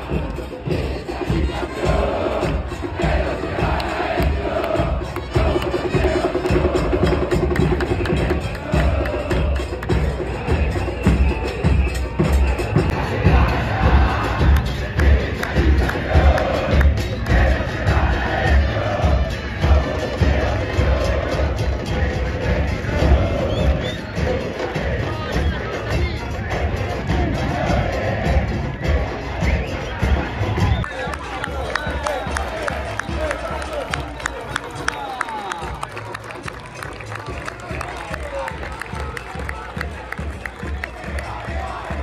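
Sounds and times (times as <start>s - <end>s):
crowd singing a chant: 0.0s - 35.9s, 36.9s - 42.0s
bass drum beats: 0.0s - 42.0s.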